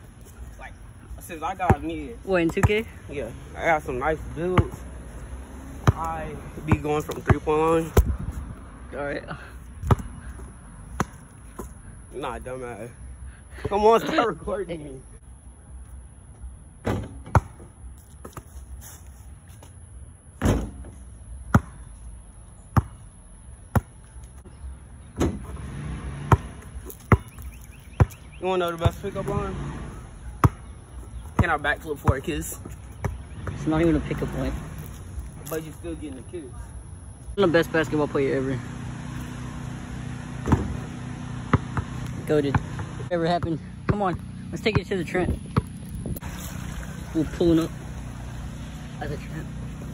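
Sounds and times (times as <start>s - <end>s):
basketball bouncing on ground: 1.5s - 3.0s, 4.4s - 5.0s, 5.8s - 8.4s, 9.8s - 11.8s, 16.8s - 18.5s, 20.4s - 21.9s, 22.7s - 24.1s, 26.2s - 29.5s, 30.2s - 35.0s, 40.4s - 46.6s.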